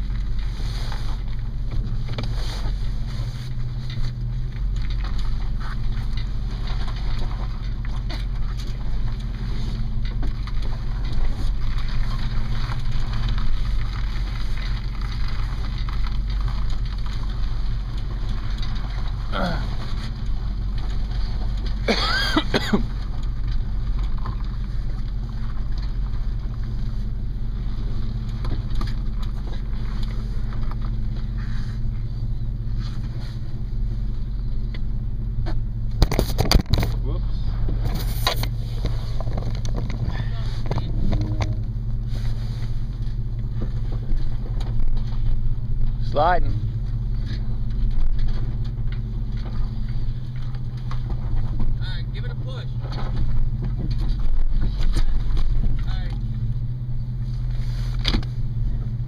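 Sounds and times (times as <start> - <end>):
vehicle engine running: 0.0 - 59.0.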